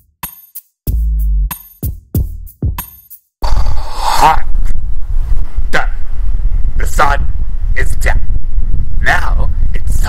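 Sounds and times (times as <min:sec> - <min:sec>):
wind rumble on microphone: 0:03.4 - 0:10.0.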